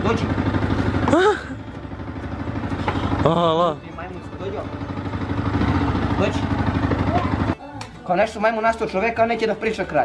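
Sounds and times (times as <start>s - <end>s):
motorcycle engine idling: 0.0s - 7.6s.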